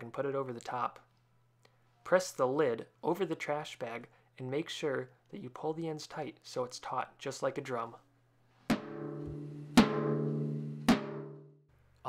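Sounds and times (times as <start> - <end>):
deep timpani-like drum hits: 8.7 - 11.4.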